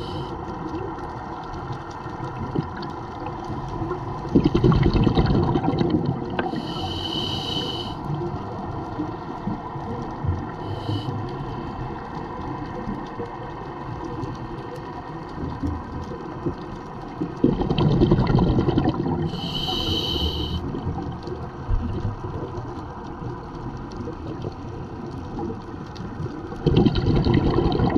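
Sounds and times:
underwater rumble of moving water: 0:00.0 - 0:27.9
bubbling burst: 0:04.3 - 0:06.4, 0:17.4 - 0:19.3, 0:26.6 - 0:27.9
short high hiss: 0:19.4 - 0:20.6.

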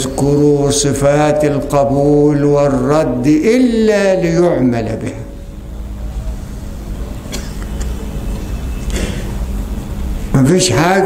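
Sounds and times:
speech: 0:00.0 - 0:05.3, 0:10.3 - 0:11.0
faint steady hum: 0:00.0 - 0:11.0.

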